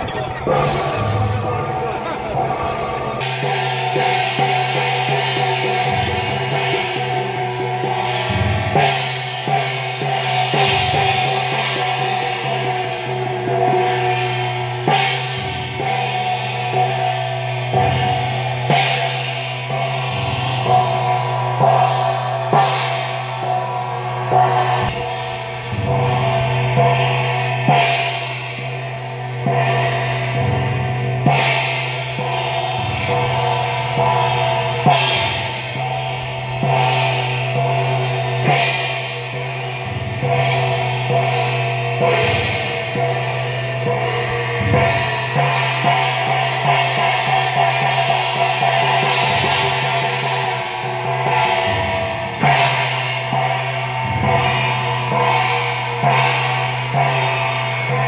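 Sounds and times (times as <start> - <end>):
cymbals: 0.0 - 58.0
drums: 0.0 - 58.0
gongs: 0.0 - 58.0
steady sustained tones: 0.0 - 58.0.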